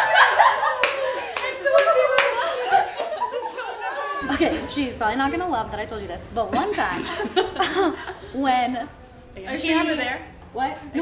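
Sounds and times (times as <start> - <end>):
women laughing and chattering: 0.0 - 11.0.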